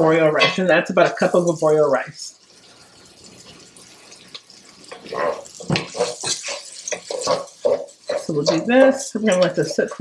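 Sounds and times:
rice sizzling in oil: 0.0s - 10.0s.

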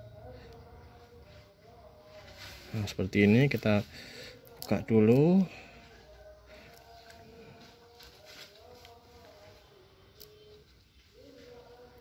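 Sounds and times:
faint distant melody: 0.0s - 12.0s.

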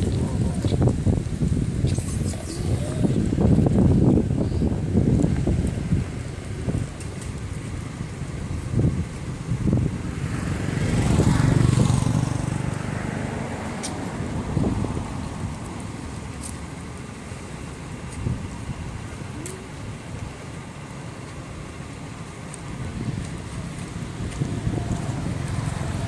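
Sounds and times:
motor vehicle passing: 4.8s - 18.0s, 22.7s - 26.0s.

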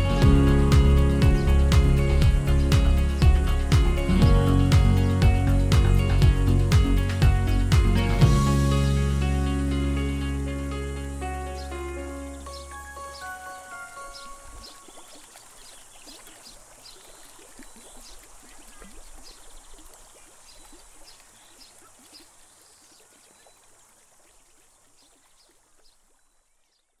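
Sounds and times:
background music: 0.0s - 14.8s
stream trickling and bubbling: 0.0s - 27.0s.

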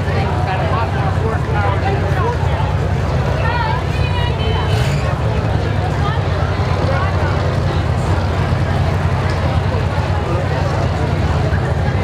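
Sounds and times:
car engines idling: 0.0s - 12.0s
crowd chatter: 0.0s - 12.0s.

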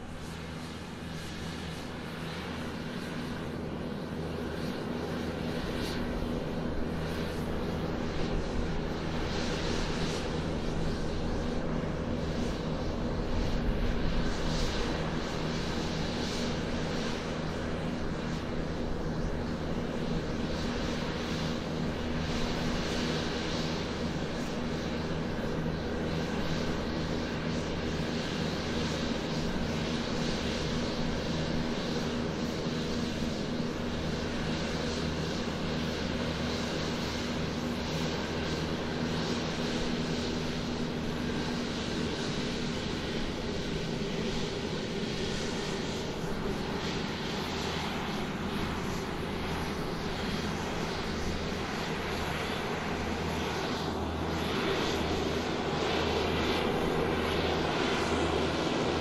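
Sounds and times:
airliner drone: 0.0s - 59.0s.

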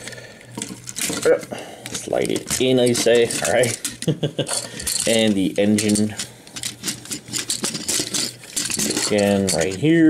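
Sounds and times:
plastic parts scraping and clicking: 0.4s - 10.0s.

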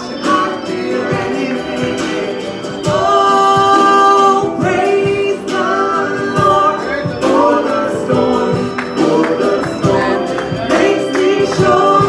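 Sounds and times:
acoustic guitar: 0.0s - 12.0s
woman singing into microphone: 0.0s - 12.0s.

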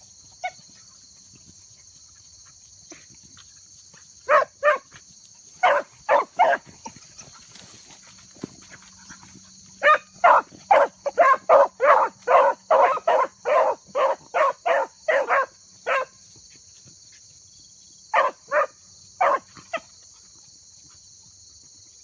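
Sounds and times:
hounds barking: 4.2s - 7.1s, 8.8s - 16.2s, 18.1s - 19.8s.

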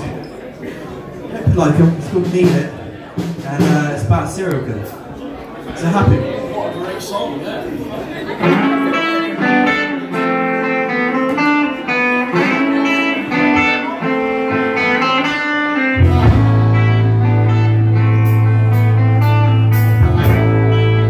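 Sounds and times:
electric guitar riff: 8.4s - 21.0s
bass guitar low note: 16.0s - 21.0s.

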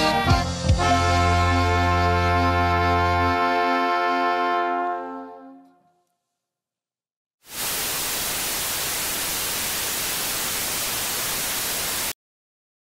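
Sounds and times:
static hiss: 7.4s - 12.2s.

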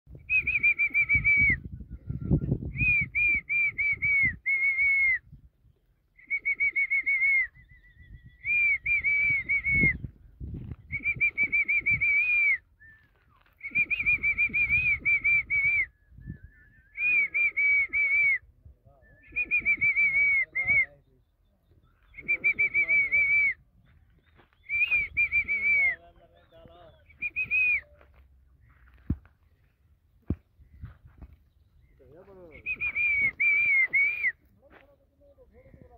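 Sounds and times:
bird whistling high notes: 6.2s - 10.1s, 19.0s - 28.0s
dull low thuds and scuffs: 9.1s - 11.6s, 22.8s - 35.9s.

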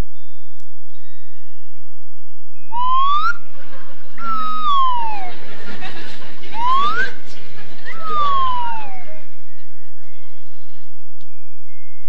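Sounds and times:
whistle sliding upward: 2.7s - 3.4s, 4.2s - 5.4s, 6.6s - 7.2s, 7.9s - 9.3s.

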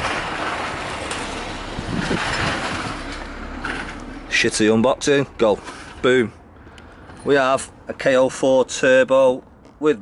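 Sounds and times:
wind on microphone: 1.6s - 3.1s.

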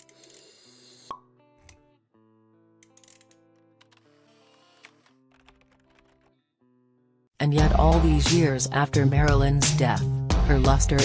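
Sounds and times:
soft synth music: 7.5s - 8.6s.

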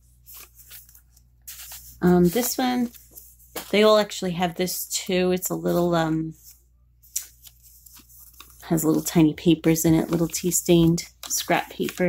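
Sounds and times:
paper pages rustling: 0.0s - 4.1s, 5.6s - 12.0s.

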